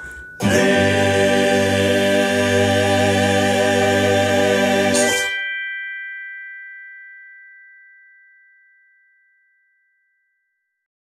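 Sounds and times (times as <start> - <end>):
bell-like jingle chime: 0.0 - 10.9.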